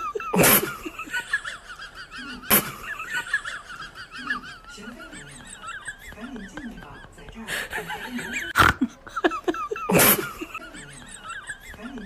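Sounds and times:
person laughing: 0:00.0 - 0:12.0.

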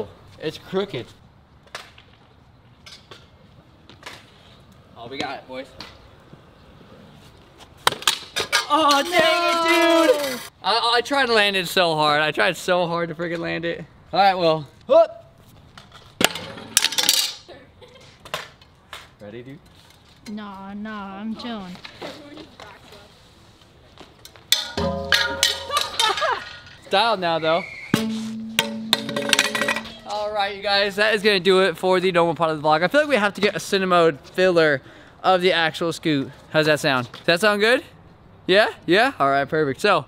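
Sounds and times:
metal scooter clanking on concrete: 0:08.3 - 0:10.5, 0:16.2 - 0:17.5, 0:24.5 - 0:26.9, 0:28.0 - 0:30.3.

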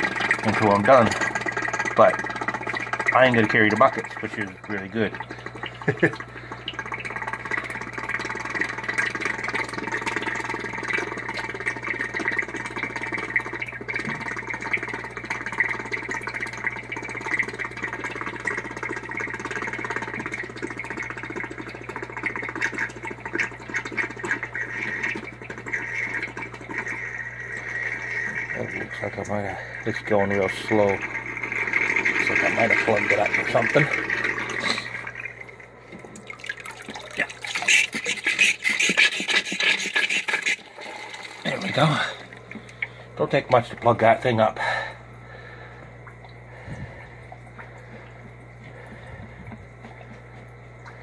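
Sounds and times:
gravel vacuum sucking water: 0:00.0 - 0:45.6.

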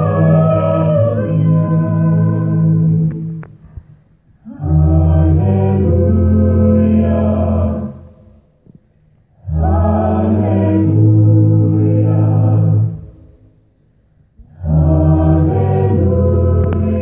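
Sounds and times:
group singing held chords: 0:00.0 - 0:13.6, 0:14.4 - 0:17.0.

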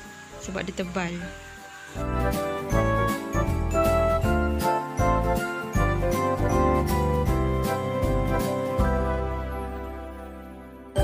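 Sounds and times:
bell-like melody with bass: 0:01.3 - 0:11.0.

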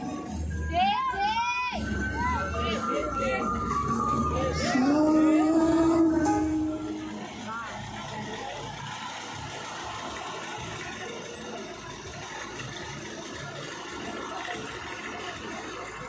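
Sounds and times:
outdoor street ambience: 0:00.0 - 0:16.0.

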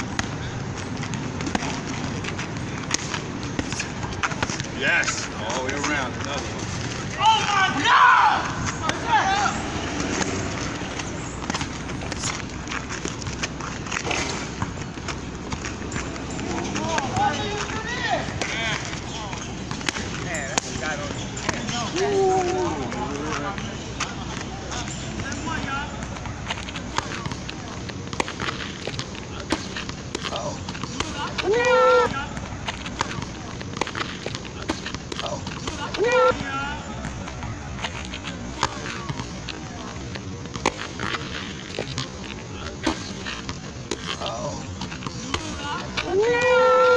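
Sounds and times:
low background noise: 0:00.0 - 0:46.9
voices calling out: 0:00.0 - 0:46.9.

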